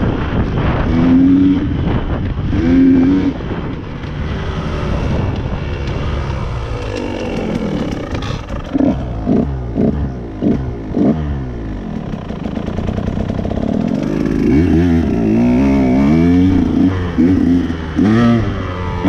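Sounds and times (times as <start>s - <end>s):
dirt bike engine revving: 0.0s - 19.0s.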